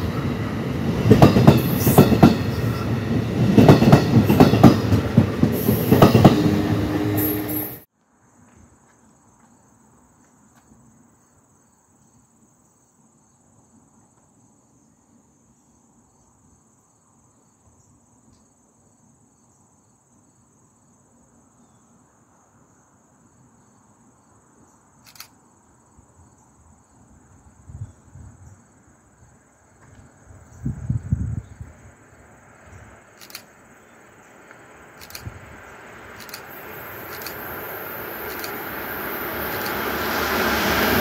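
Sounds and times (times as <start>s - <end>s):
insects buzzing: 9.1s - 41.0s
sharp click: 25.0s - 25.4s, 33.2s - 33.5s, 35.0s - 35.3s, 36.2s - 36.5s, 37.1s - 37.4s, 38.3s - 38.6s, 39.5s - 39.8s.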